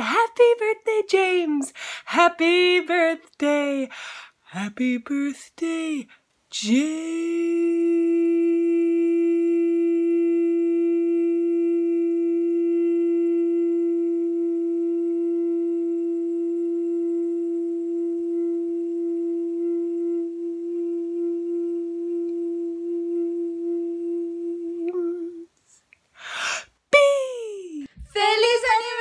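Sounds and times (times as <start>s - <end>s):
long drone note: 7.6s - 25.4s.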